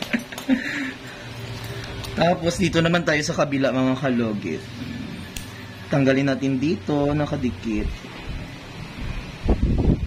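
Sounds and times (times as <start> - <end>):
faint steady background noise: 0.0 - 10.0
wind buffeting microphone: 9.0 - 10.0.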